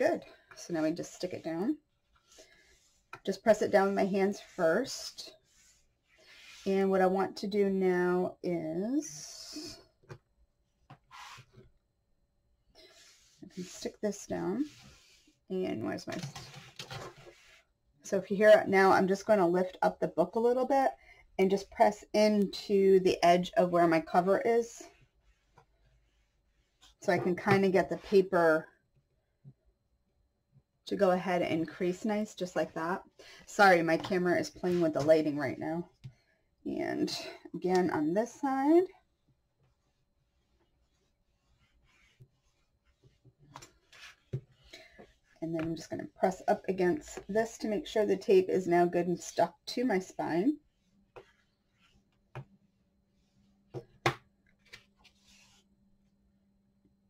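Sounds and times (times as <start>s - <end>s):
paper rubbing: 39.6s - 44.6s.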